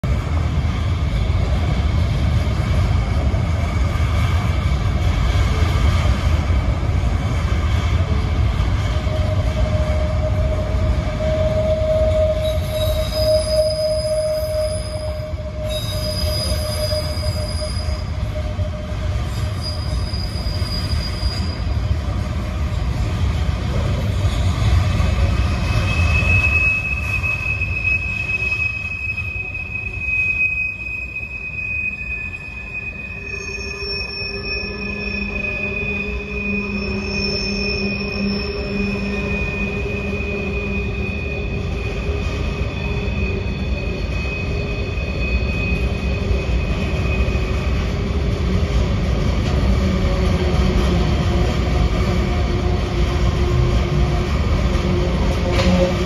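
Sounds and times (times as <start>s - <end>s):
train wheels rumbling on rail: 0.0s - 56.0s
train wheels squealing: 8.0s - 23.1s, 23.7s - 56.0s.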